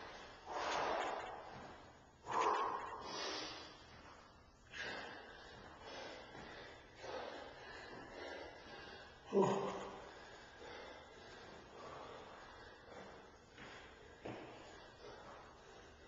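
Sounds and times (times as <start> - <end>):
man breathing hard: 0.0 - 16.0.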